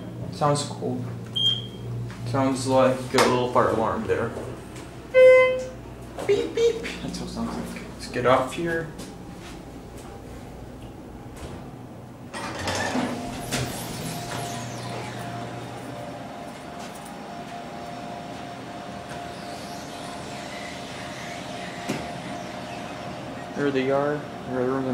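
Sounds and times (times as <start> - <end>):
elevator humming: 0.0 - 24.9
elevator doors sliding open: 11.3 - 15.8.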